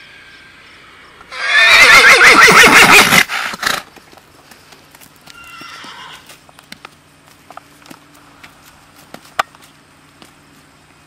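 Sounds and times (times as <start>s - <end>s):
horse whinnying: 1.3s - 3.8s, 5.3s - 6.3s.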